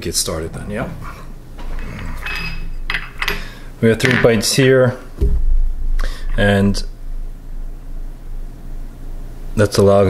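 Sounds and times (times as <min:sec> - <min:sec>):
dishes and spoons clinking: 0:00.9 - 0:04.5.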